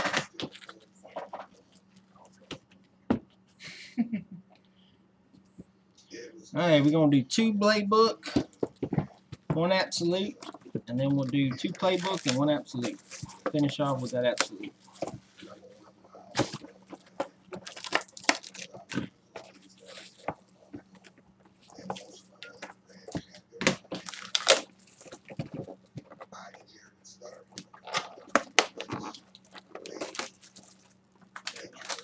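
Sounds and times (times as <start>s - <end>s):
foil wrappers crinkling: 0.0s - 2.9s, 8.3s - 32.0s.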